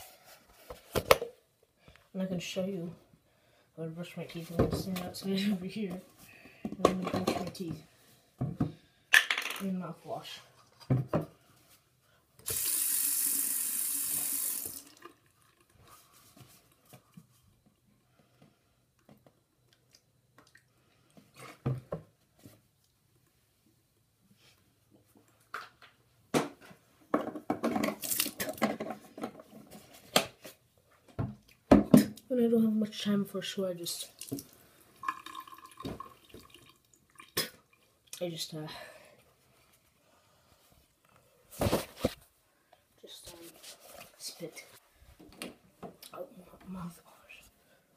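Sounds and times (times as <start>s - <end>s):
sink tap water running: 12.4s - 15.7s
tap water splashing into sink: 34.2s - 37.6s.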